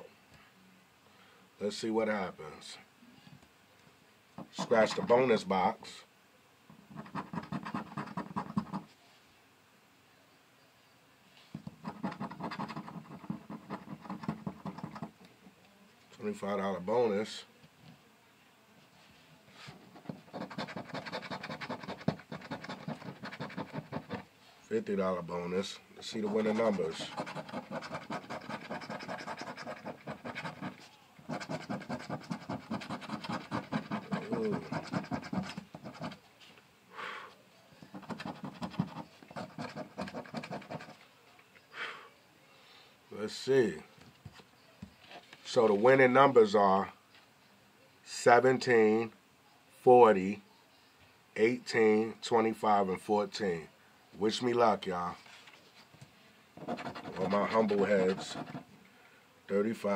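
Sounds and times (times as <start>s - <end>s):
coin scratching lottery ticket: 4.5s - 5.2s, 6.9s - 8.9s, 11.7s - 15.1s, 19.7s - 24.3s, 26.0s - 36.2s, 37.8s - 41.0s, 56.6s - 58.7s.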